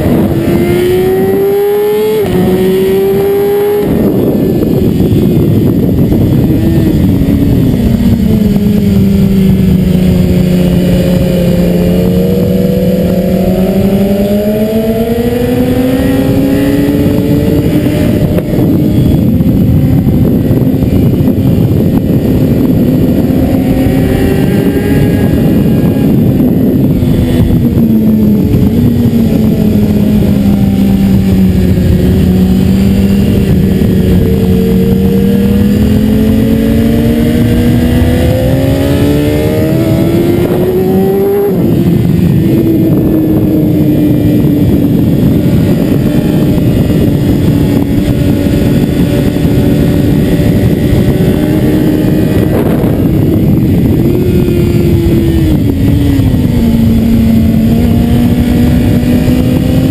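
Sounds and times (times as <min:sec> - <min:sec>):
motorcycle engine accelerating: 0:00.0 - 0:59.9
wind rushing on microphone: 0:00.0 - 0:59.9.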